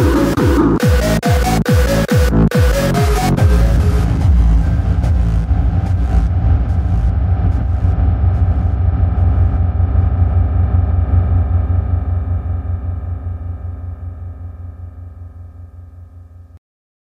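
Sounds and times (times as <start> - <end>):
deep wavering synth bass rumble: 0.0 - 16.6.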